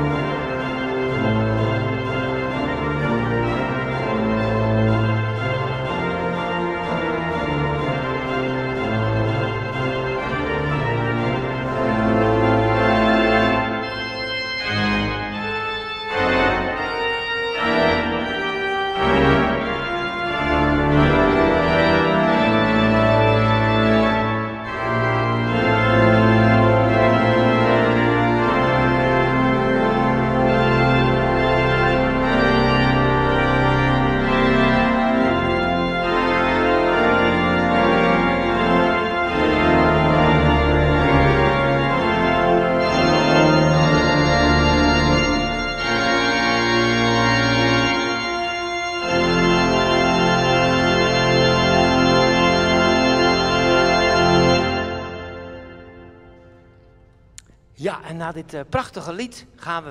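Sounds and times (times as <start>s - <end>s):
pipe organ playing chords: 0.0s - 59.9s.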